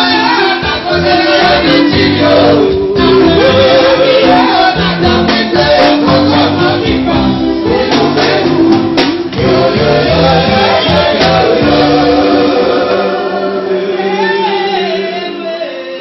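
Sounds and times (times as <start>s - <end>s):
bass line: 0.0s - 13.6s
voices singing held notes: 0.0s - 16.0s.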